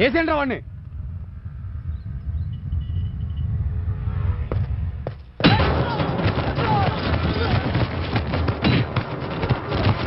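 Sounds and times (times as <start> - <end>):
low steady rumble: 0.0 - 5.4.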